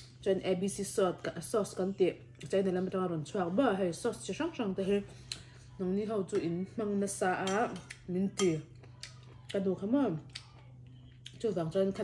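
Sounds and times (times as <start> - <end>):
woman talking: 0.0 - 8.8, 9.5 - 10.6, 11.3 - 12.0.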